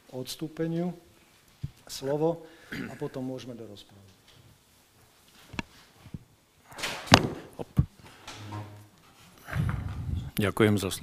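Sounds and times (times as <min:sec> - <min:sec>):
man clearing throat: 0:02.7 - 0:03.2.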